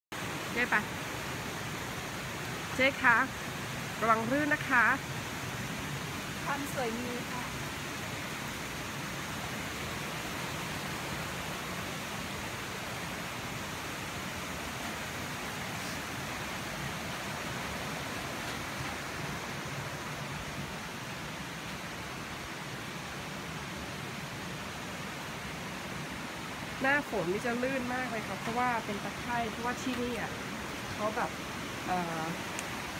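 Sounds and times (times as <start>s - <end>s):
rushing hiss of outdoor ambience: 0.1s - 32.9s.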